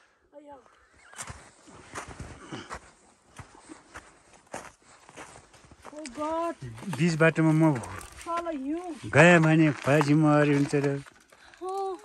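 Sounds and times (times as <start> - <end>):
footsteps on snow: 0.6 - 11.2.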